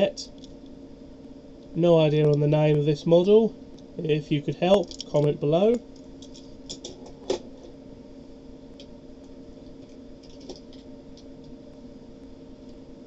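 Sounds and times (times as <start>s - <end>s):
steady electrical hum: 0.0s - 13.0s.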